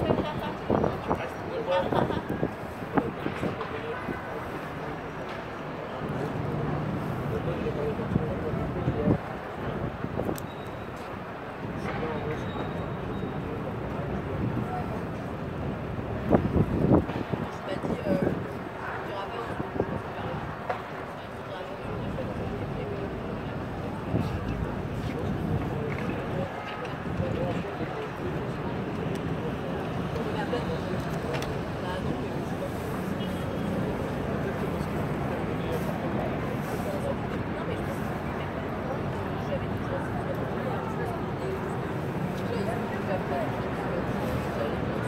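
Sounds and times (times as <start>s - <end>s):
faint indistinct voices: 0.0s - 45.0s
low city rumble: 0.0s - 45.0s
urban noise: 0.0s - 45.0s.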